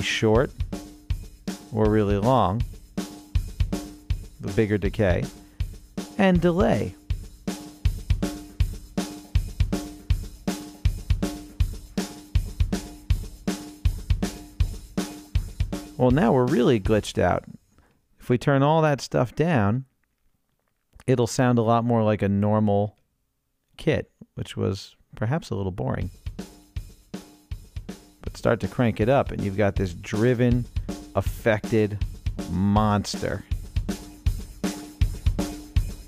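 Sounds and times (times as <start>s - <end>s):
glitched drum loop with echo: 0.0s - 17.2s, 26.1s - 36.0s.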